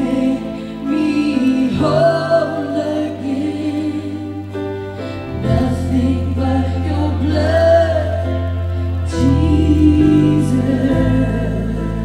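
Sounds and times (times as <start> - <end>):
voices singing together: 0.0 - 12.0.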